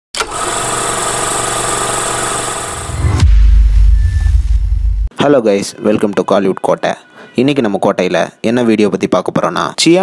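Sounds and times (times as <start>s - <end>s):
deep bass boom: 2.9s - 5.1s.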